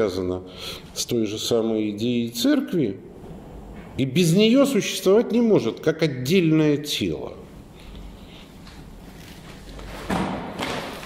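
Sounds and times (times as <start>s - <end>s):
dull thumps in a room: 9.9s - 11.0s.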